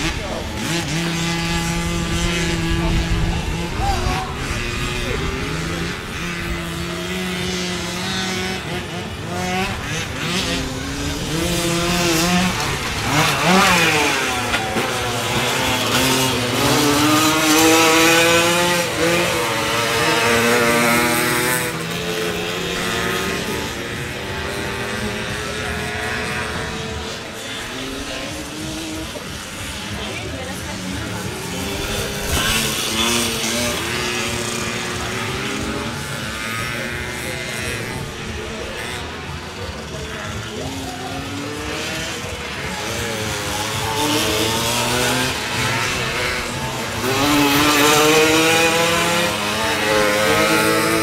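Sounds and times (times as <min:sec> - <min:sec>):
motorcycle passing close: 0:00.0 - 0:51.0
two-stroke motorcycles racing: 0:00.0 - 0:51.0.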